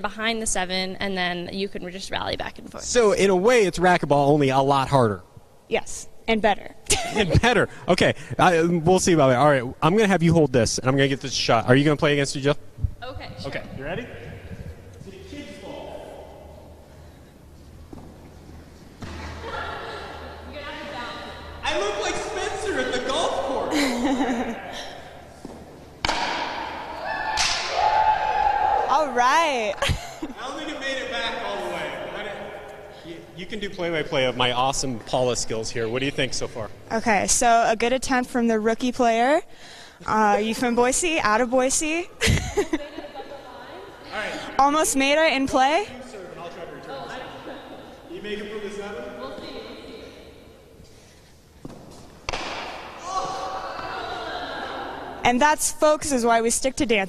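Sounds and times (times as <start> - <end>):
ball hitting wall: 25.4 - 27.8, 51.6 - 53.9
paddle striking ball: 25.4 - 27.8, 51.6 - 53.9.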